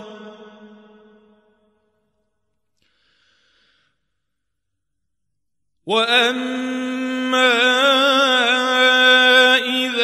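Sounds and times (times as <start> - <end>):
man reciting melodically: 0.0 - 1.2, 5.8 - 10.0.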